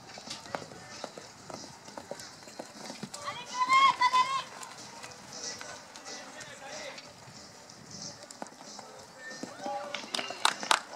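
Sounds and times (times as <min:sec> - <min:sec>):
horse hoofbeats on sand: 0:00.0 - 0:10.9.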